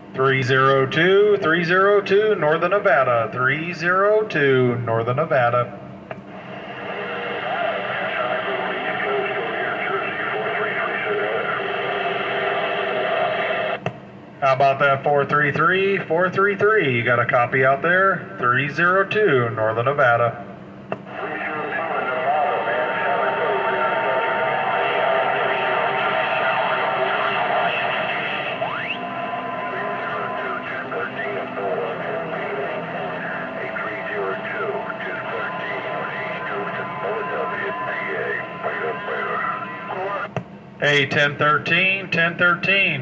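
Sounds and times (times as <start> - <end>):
faint garbled radio voices: 0.0 - 13.8, 14.4 - 43.0
radio static: 6.3 - 13.8, 20.9 - 43.0
radio whistle: 6.6 - 13.8, 21.1 - 40.3.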